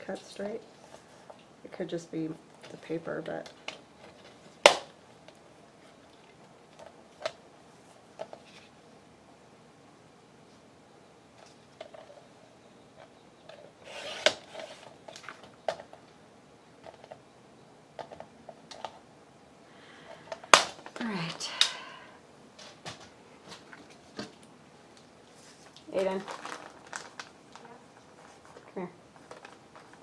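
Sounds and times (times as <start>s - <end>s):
paper trimmer cutting: 13.8s - 14.9s.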